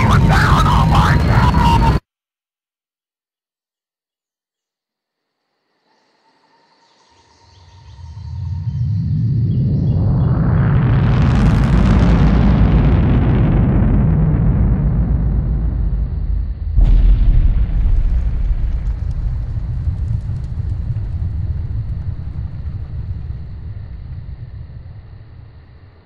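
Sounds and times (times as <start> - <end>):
deep rumbling blast: 0.0 - 2.0, 8.2 - 26.0
sharp hit: 16.8 - 19.8.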